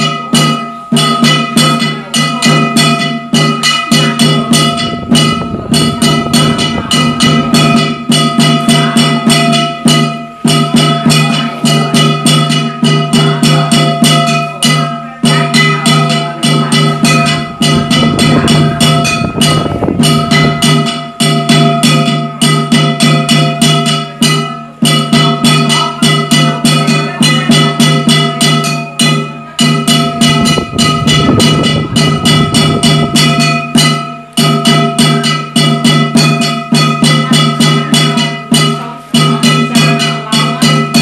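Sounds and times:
fast percussion strikes: 0.0 - 41.0
steady ringing tones: 0.0 - 41.0.

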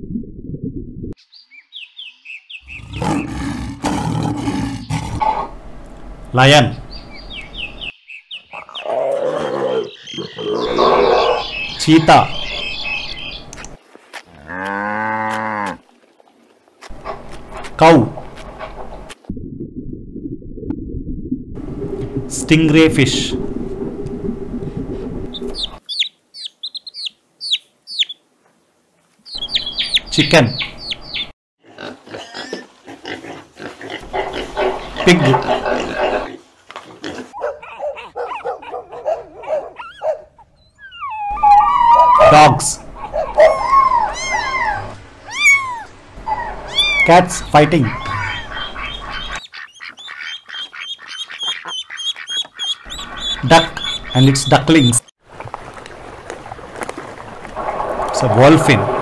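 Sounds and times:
descending bird chirps: 1.2 - 3.4, 6.7 - 13.7, 25.3 - 28.2, 29.3 - 31.3, 39.8 - 42.3, 43.0 - 55.1
lion growling: 2.7 - 5.6, 8.6 - 11.5, 33.0 - 36.4, 57.6 - 59.0
chicks peeping: 25.3 - 28.2, 29.3 - 31.3, 47.9 - 54.9
piglet grunting: 31.6 - 41.4.

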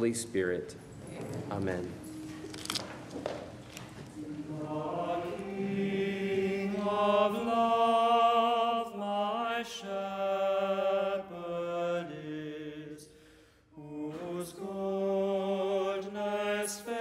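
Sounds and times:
voices singing a hymn in unison: 3.8 - 17.0.

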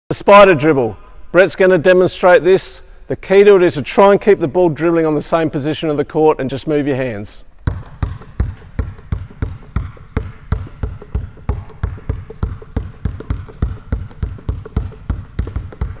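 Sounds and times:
basketball bouncing on hardwood: 7.6 - 16.0.

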